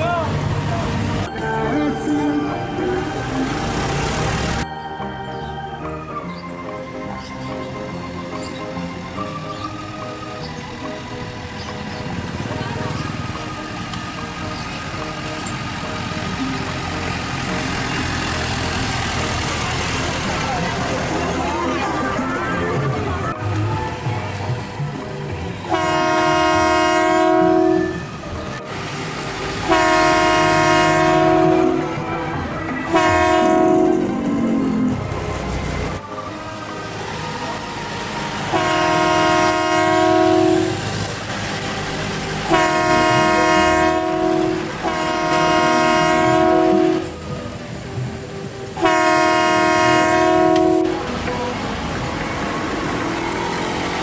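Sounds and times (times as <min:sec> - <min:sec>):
road and engine noise: 0:00.0 - 0:54.0
multi-tone air horn blasts: 0:25.7 - 0:28.1, 0:29.6 - 0:32.0, 0:32.8 - 0:34.3, 0:38.5 - 0:40.9, 0:42.4 - 0:47.2, 0:48.8 - 0:51.0.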